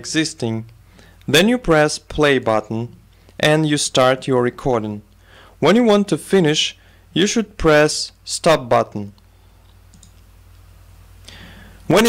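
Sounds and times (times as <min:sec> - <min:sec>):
steady low hum: 0:00.0 - 0:12.0
computer mouse clicks: 0:09.2 - 0:10.3.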